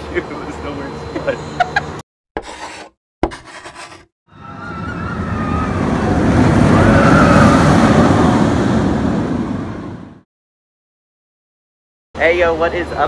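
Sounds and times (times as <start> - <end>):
rushing noise: 4.4 - 10.2.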